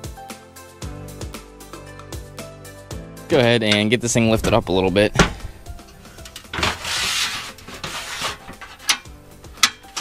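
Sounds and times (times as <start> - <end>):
metal frame scraping: 4.4 - 10.0.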